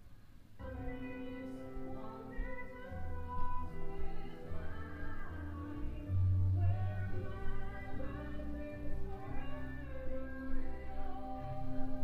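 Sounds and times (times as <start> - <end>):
musical accompaniment: 0.6 - 12.0
woman singing: 0.6 - 12.0.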